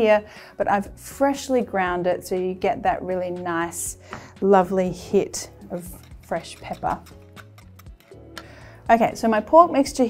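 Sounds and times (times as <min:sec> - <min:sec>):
soft background music: 0:00.0 - 0:10.0
spoon clinking against ceramic bowl: 0:05.5 - 0:08.2.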